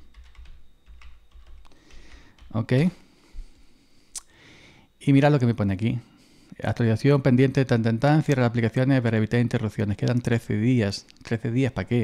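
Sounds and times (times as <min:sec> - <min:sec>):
computer keyboard typing: 0:00.0 - 0:02.8.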